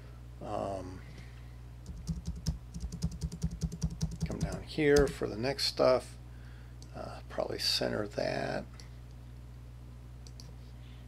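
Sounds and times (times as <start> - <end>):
low electrical hum: 0.0 - 11.0
computer mouse clicks: 10.2 - 10.5.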